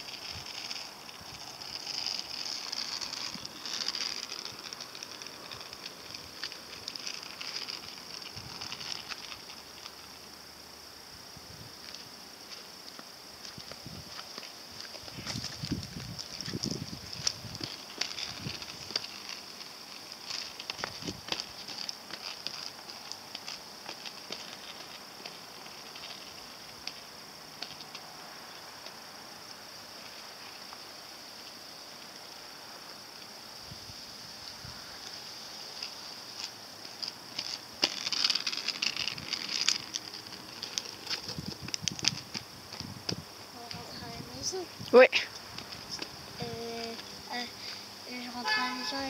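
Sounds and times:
skate wheels rolling on asphalt: 0:00.0 - 0:49.0.

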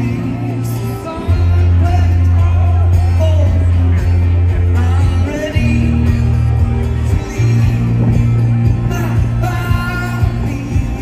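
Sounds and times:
bass line: 0:00.0 - 0:11.0
guitar: 0:00.0 - 0:11.0
live rock band: 0:00.0 - 0:11.0
person singing: 0:00.0 - 0:11.0.

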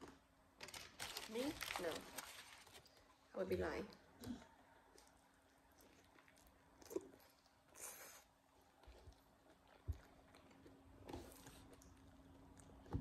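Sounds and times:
faint chewing: 0:04.1 - 0:13.0.

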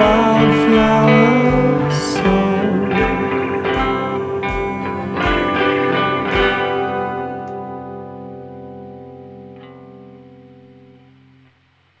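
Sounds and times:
electric guitar chord ringing: 0:00.0 - 0:11.8.

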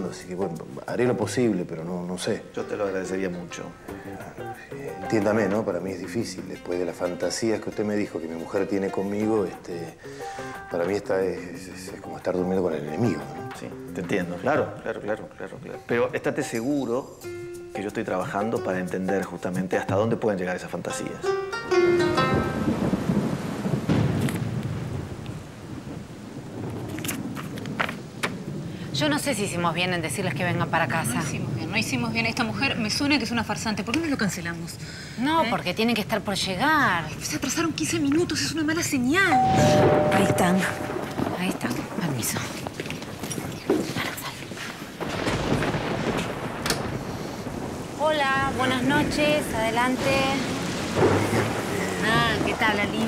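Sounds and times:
steady rain: 0:00.0 - 0:16.9, 0:21.8 - 0:53.0
wind: 0:20.6 - 0:53.0
thunder rumbling: 0:22.2 - 0:33.7, 0:38.8 - 0:53.0.

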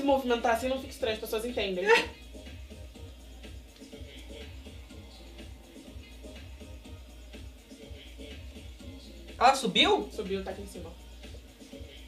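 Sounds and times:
pop music playing through a tv: 0:00.0 - 0:12.0
steady bass line: 0:00.0 - 0:12.0.

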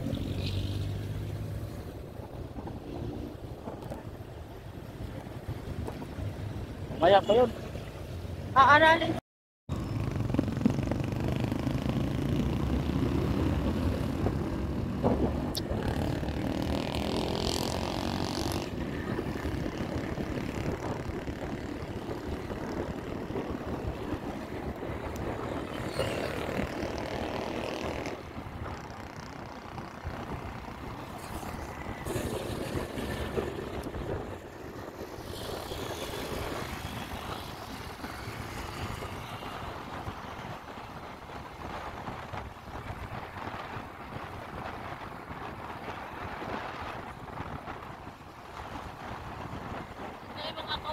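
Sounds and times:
wind noise: 0:00.0 - 0:07.6, 0:09.8 - 0:50.9
passing traffic: 0:00.0 - 0:50.9
motorcycle engine drone: 0:09.7 - 0:50.9.

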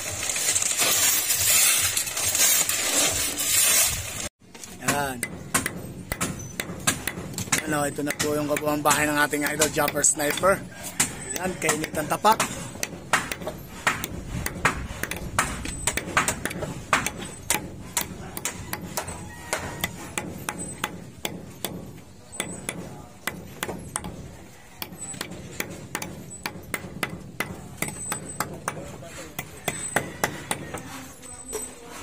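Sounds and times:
hammers pounding on timber: 0:04.5 - 0:31.6.

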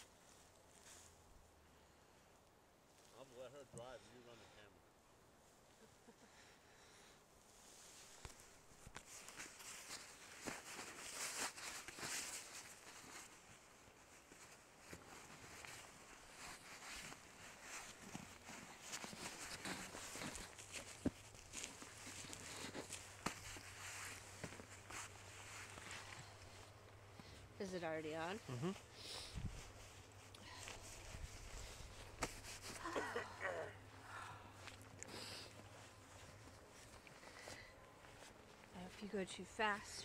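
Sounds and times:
footsteps on snow: 0:07.6 - 0:33.1.

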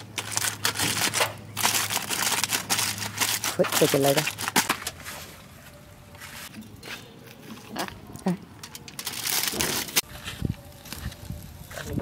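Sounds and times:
aluminium foil crinkling: 0:00.0 - 0:05.2, 0:08.6 - 0:12.0.

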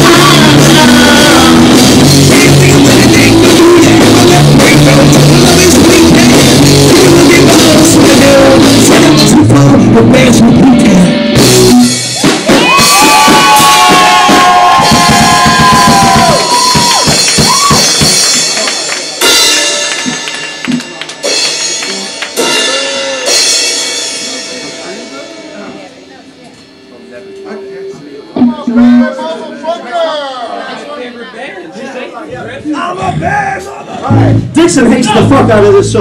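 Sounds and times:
drum and cymbal hits: 0:00.0 - 0:27.4
drums crashing: 0:00.0 - 0:27.4, 0:34.1 - 0:36.0
rock band playing live: 0:00.0 - 0:29.5, 0:34.1 - 0:36.0
held electric guitar notes: 0:34.1 - 0:35.6.

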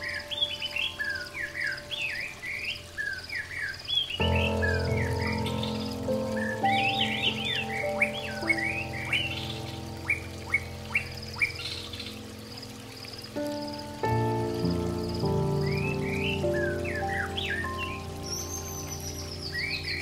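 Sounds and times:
soft background music chords: 0:00.0 - 0:20.0
songbirds chirping: 0:00.0 - 0:20.0.

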